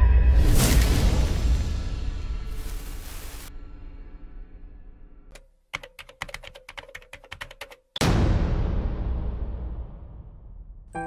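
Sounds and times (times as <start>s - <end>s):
keystroke clicks: 5.3s - 7.9s.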